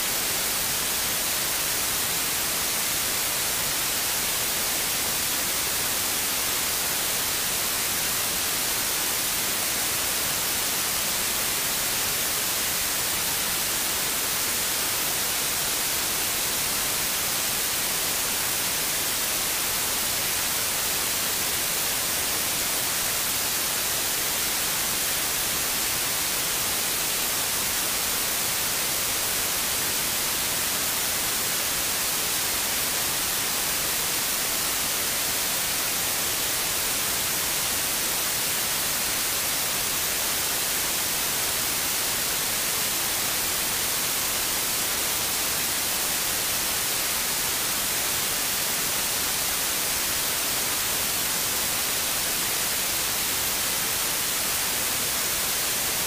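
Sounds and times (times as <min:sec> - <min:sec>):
static hiss: 0:00.0 - 0:56.0.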